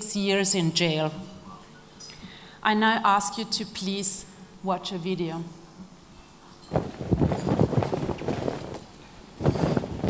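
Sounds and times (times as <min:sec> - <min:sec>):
flag flapping in strong wind: 0:06.7 - 0:10.0.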